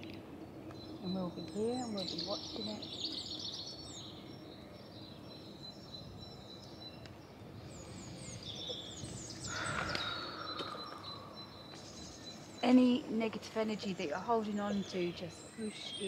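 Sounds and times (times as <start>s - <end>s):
outdoor background noise: 0.0s - 16.0s
small birds chirping: 0.0s - 16.0s.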